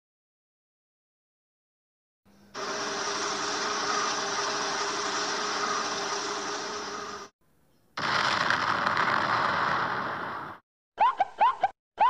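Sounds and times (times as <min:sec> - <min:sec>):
brighter rush: 0:02.6 - 0:07.3
explosion rushing rumble: 0:08.0 - 0:10.6.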